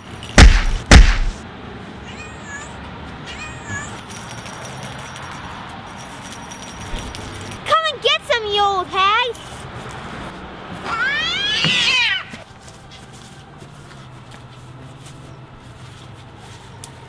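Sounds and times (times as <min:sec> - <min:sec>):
heavy thumps: 0:00.4 - 0:01.4
cat meowing: 0:02.0 - 0:04.0.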